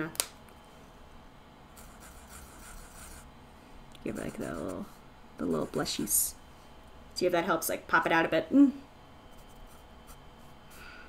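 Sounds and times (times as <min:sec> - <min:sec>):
marker scratching on paper: 0:01.8 - 0:03.3, 0:04.1 - 0:06.1.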